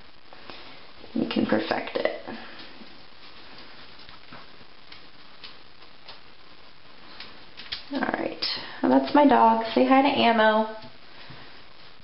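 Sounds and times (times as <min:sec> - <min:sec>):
steady background hiss: 0:00.0 - 0:12.0
dog claws clicking on tile floor: 0:03.6 - 0:06.2, 0:07.1 - 0:07.9.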